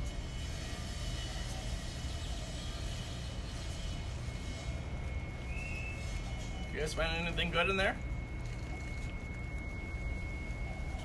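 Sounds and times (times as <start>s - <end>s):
low outdoor rumble: 0.0s - 11.0s
faint high whistle: 0.3s - 11.0s.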